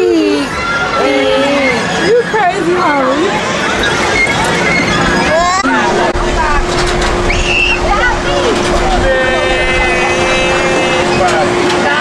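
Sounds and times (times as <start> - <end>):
crowd voices: 0.0 - 12.0
steady machine hum: 0.0 - 12.0.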